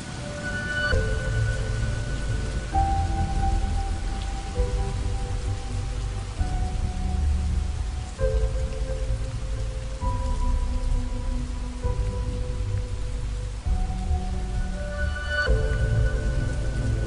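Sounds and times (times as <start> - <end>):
slow ambient music: 0.0 - 17.0
steady rain: 0.0 - 17.0.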